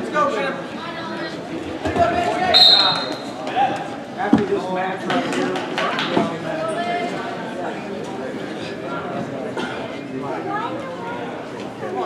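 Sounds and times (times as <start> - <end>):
voices in gym hall: 0.0 - 12.0
referee's whistle: 2.5 - 3.3.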